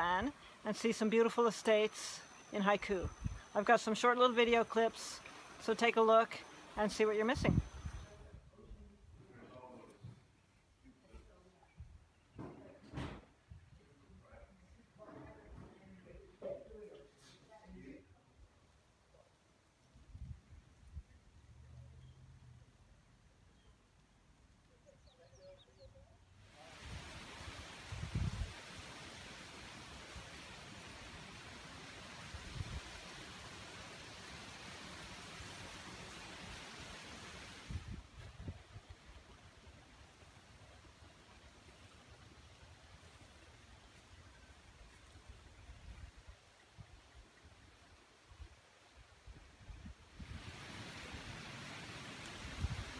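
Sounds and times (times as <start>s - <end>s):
distant surf: 0.0s - 8.1s, 50.2s - 52.9s
rushing outdoor hiss: 0.0s - 8.2s, 26.4s - 52.9s.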